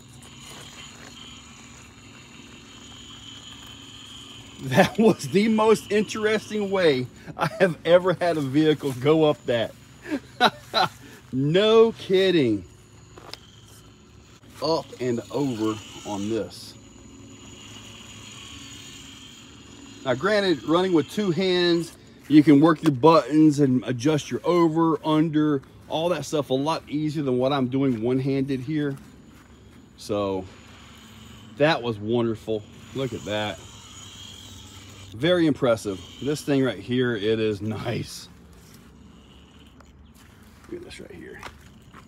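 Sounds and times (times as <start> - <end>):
electric motors humming and whining: 0.0 - 42.0.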